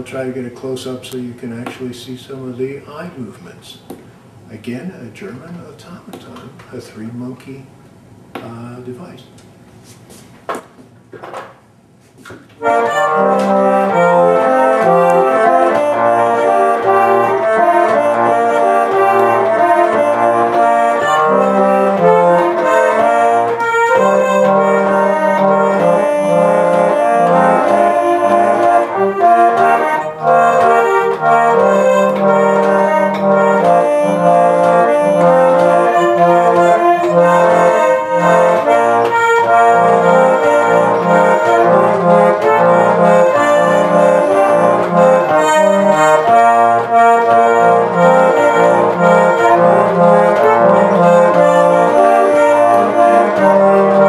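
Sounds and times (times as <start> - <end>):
mechanical organ melody: 12.6 - 54.0.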